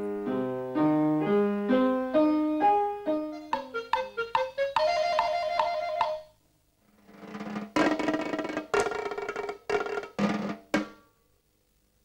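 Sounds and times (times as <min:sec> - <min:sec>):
repeated piano notes: 0:00.0 - 0:06.4
drum roll and hits: 0:07.1 - 0:11.0.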